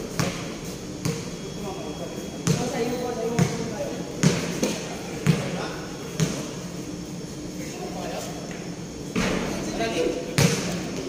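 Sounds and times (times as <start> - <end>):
basketball bouncing on concrete: 0.2 - 0.4, 1.0 - 1.2, 2.4 - 3.6, 4.2 - 5.5.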